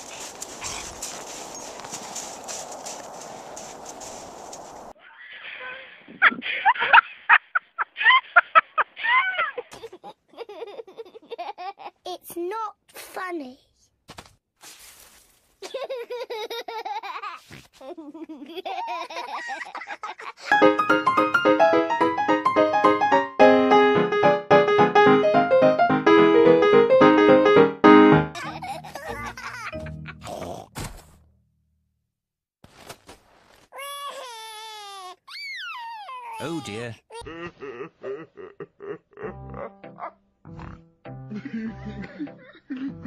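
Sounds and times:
cartoon children laughing: 6.2 - 12.0, 15.6 - 20.6, 28.3 - 30.6, 35.4 - 40.2
cartoon child crying: 28.4 - 30.6, 33.8 - 40.1.

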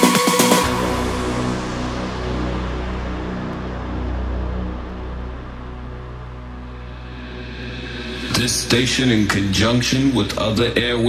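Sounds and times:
deep bass drone: 0.0 - 11.0
synth pad chords: 0.0 - 11.0.

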